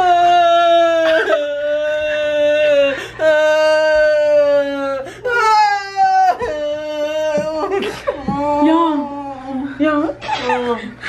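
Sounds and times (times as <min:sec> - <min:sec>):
woman wailing: 0:00.0 - 0:11.0.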